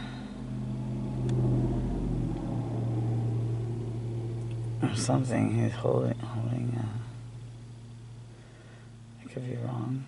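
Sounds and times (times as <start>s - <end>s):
deep rumble: 0.0s - 10.0s
vehicle engine humming: 0.0s - 10.0s.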